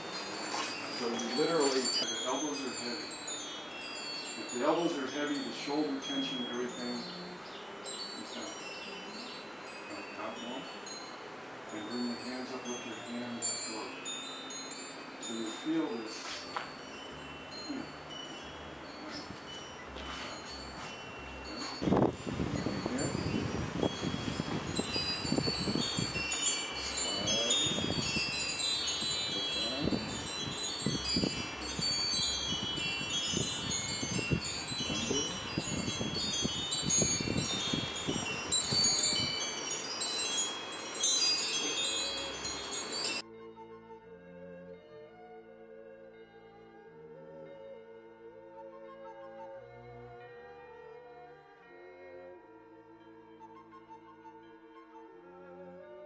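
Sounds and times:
wind chimes tinkling: 0:00.0 - 0:43.3.

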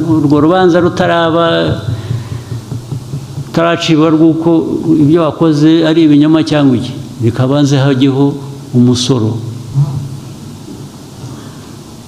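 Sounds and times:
low rumble of room noise: 0:00.0 - 0:12.0.

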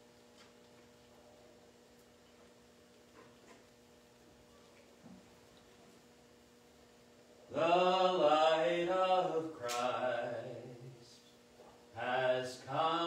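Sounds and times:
man singing long held notes: 0:07.5 - 0:11.2, 0:12.0 - 0:13.0.

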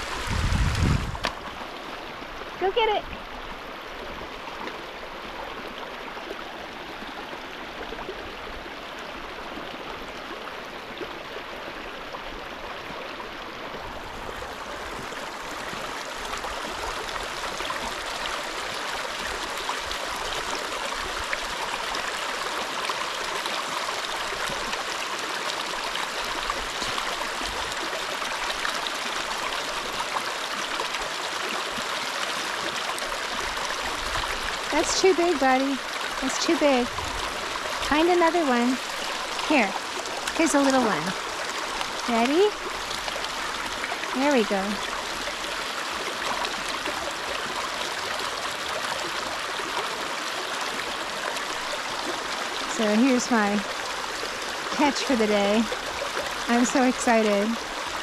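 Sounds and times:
mountain stream splashing over stones: 0:00.0 - 0:58.0.

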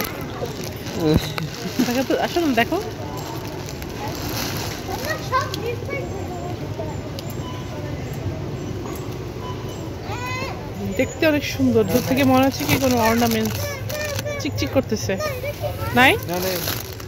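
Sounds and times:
busy store background noise: 0:00.0 - 0:17.0
children chattering: 0:00.0 - 0:17.0.

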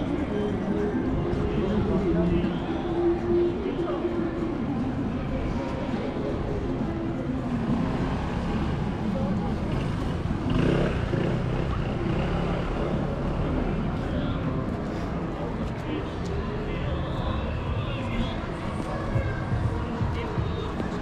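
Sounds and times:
low rumble of city traffic: 0:00.0 - 0:21.0
talk of passers-by: 0:00.0 - 0:21.0.

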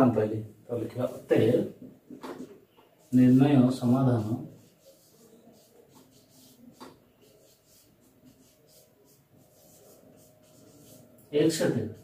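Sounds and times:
marker pen on whiteboard: 0:00.8 - 0:12.0.

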